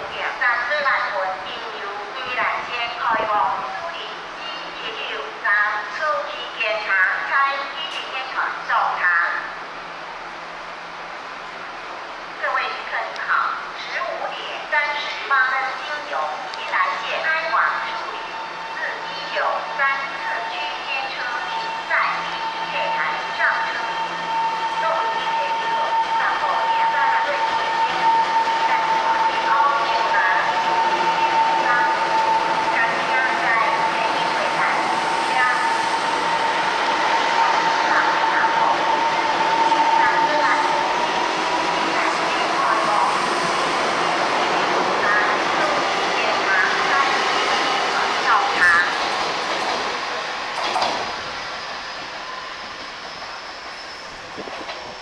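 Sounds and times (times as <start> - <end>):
electric train running past: 13.5 - 55.0.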